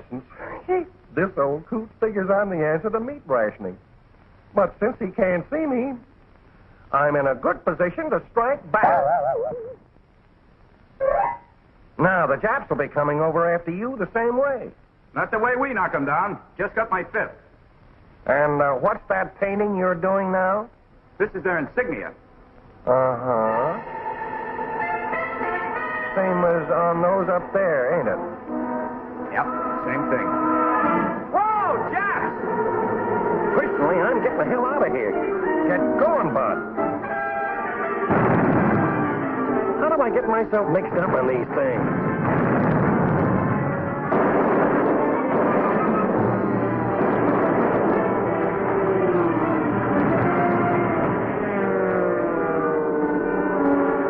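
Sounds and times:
cartoon bird vocal warble: 8.7s - 9.8s
orchestral music holding a chord: 23.5s - 31.3s
loud rumbling explosion: 38.1s - 52.7s.

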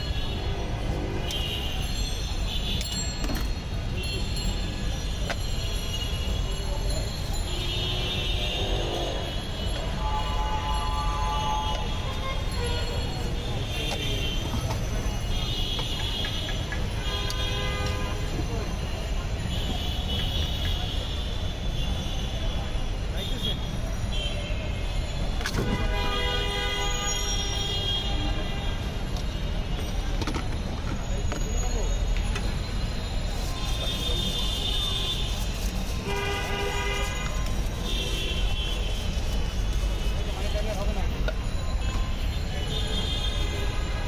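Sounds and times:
street traffic rumble: 0.0s - 44.0s
vehicle horn: 7.6s - 13.1s, 17.0s - 18.3s, 25.5s - 28.9s, 36.0s - 39.0s.

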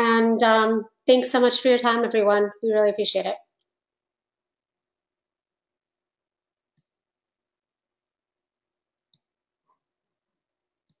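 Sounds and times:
faint mouse clicks: 9.1s - 9.3s.

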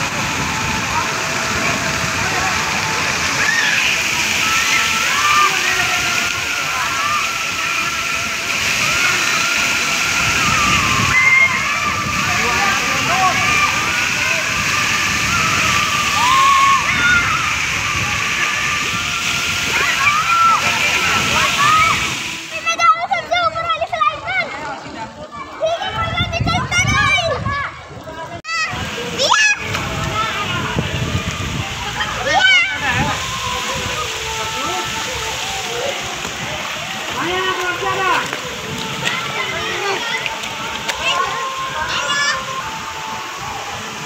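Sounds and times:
children shouting: 0.0s - 44.0s
children's voices: 0.0s - 44.0s
water pouring and splashing: 0.0s - 44.0s.

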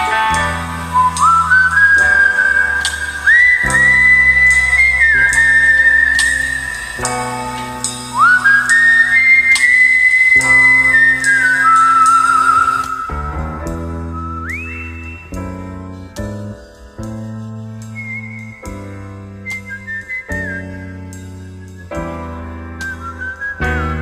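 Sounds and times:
backing track with bass and beat: 0.0s - 24.0s
whistled melody: 0.0s - 24.0s.

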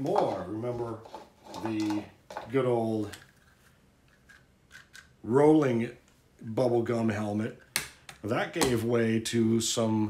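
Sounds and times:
plastic toy parts clicking: 4.1s - 5.1s.

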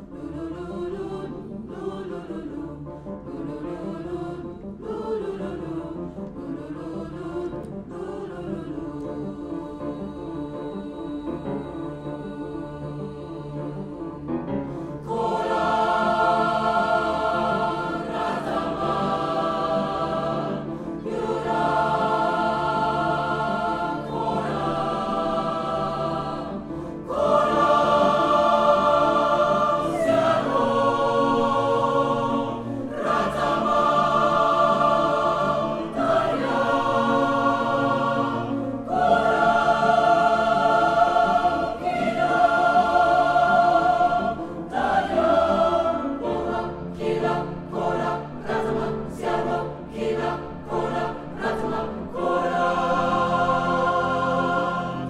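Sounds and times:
mixed choir singing: 0.0s - 55.0s
piano accompaniment: 0.0s - 55.0s.

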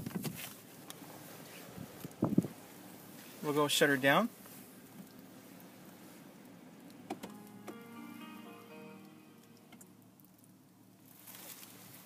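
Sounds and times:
electronic stepped chime: 7.3s - 10.1s.

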